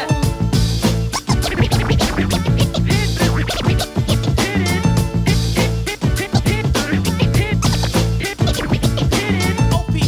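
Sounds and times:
hip-hop beat with heavy bass: 0.0 - 10.0
turntable scratches: 1.0 - 9.6.

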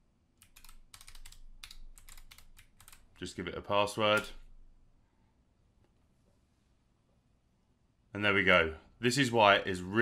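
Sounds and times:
keyboard typing: 0.4 - 3.2.

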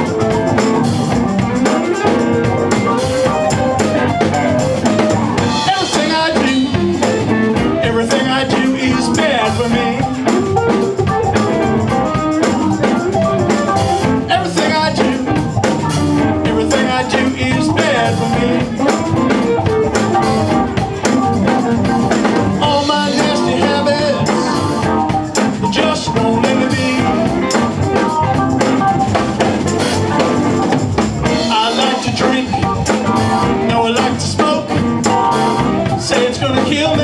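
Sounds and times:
live band playing: 0.0 - 37.0.

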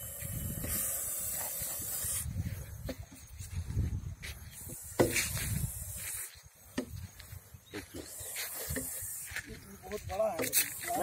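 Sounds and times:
snake hissing: 0.0 - 2.8, 4.3 - 6.6, 7.4 - 9.7.

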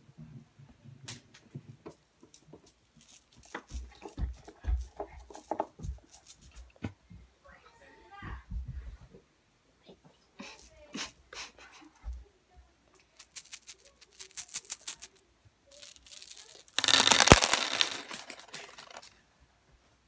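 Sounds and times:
plastic bag of pieces rattling: 3.0 - 6.5, 13.1 - 19.1.

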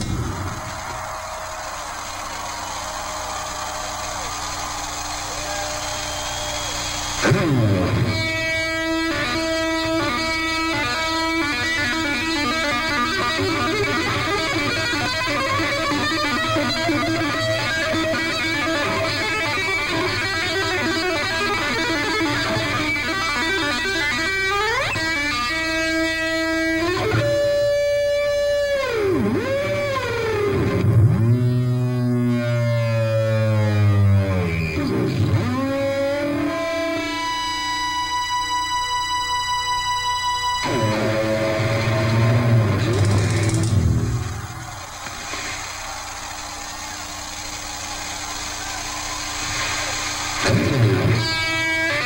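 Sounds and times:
distorted electric guitar: 0.0 - 52.0.

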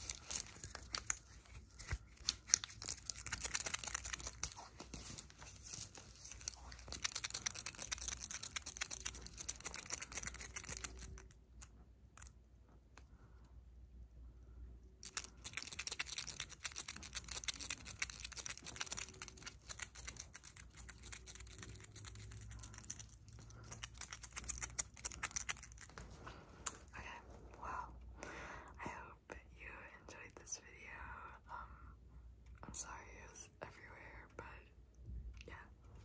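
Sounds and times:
soft whispering: 0.0 - 11.4, 14.3 - 36.0
rapid clicking and tapping fingers: 0.0 - 12.3, 15.0 - 26.9.

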